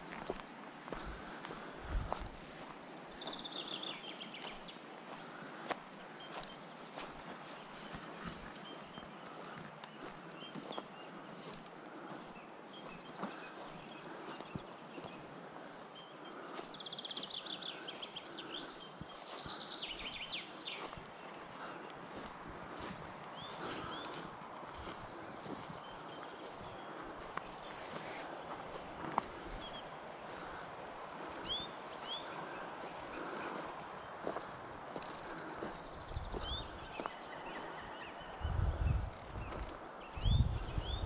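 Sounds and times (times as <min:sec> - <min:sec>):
footsteps crunching dry grass: 0:00.0 - 0:15.4, 0:16.3 - 0:41.0
birds chirping: 0:00.0 - 0:41.0.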